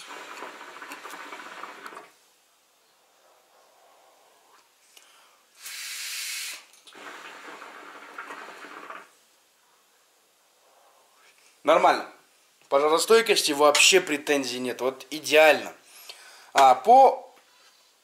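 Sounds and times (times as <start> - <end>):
hookah water bubbling: 0.0 - 2.2, 6.9 - 9.1
breath blown hiss: 5.4 - 7.6.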